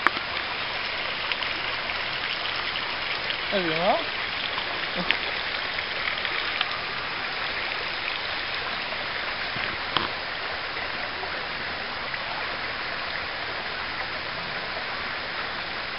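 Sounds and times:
river rushing over stones: 0.0 - 15.9.

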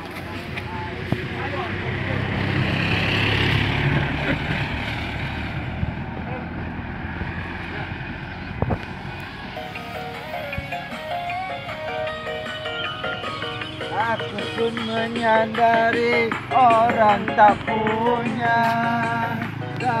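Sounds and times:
motorbike passing: 0.0 - 20.0
music from portable speaker: 9.5 - 20.0.

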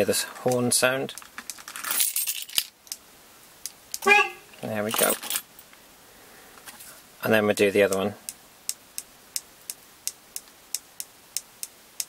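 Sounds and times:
keys jangling on a keyring: 4.9 - 5.5.

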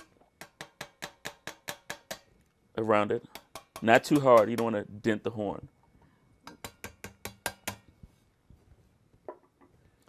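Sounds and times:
hammer tapping on brass: 3.3 - 4.8, 6.4 - 7.9.

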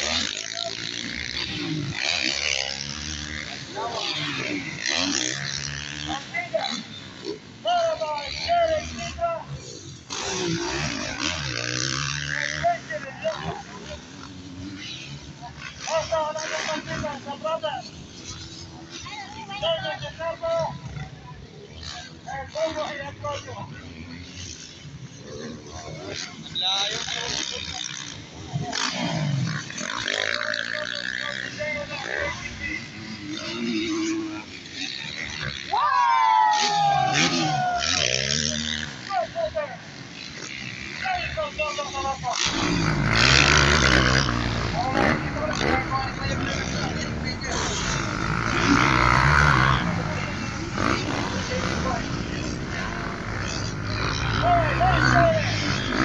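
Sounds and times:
dirt bike engines revving: 0.0 - 56.0.

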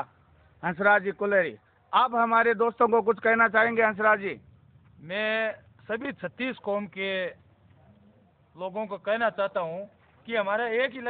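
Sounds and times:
man asking a question: 5.0 - 11.0.

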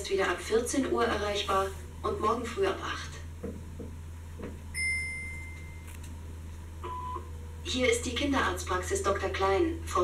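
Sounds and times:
low playback hum: 0.0 - 10.0
short lower beep: 4.8 - 5.9, 6.8 - 7.3.

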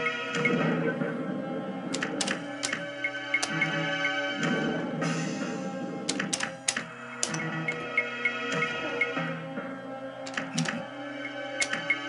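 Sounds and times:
slot machine background music: 0.0 - 12.0.

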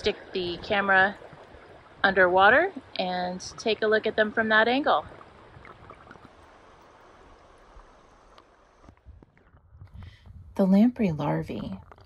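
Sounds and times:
underwater river current rush: 0.0 - 9.6.

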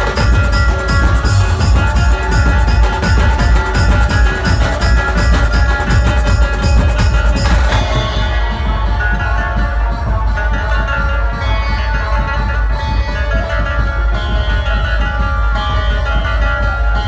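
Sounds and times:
barrel drums beating: 0.0 - 17.0
held melody line: 0.0 - 17.0.

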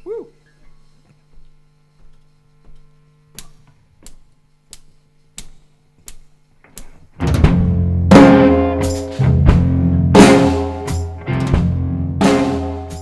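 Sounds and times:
low amplifier hum: 0.0 - 13.0.

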